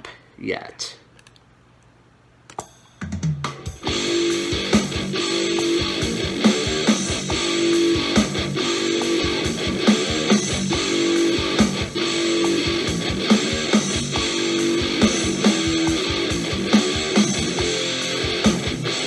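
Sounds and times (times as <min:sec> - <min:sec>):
distorted electric guitar chords: 0:03.6 - 0:19.0.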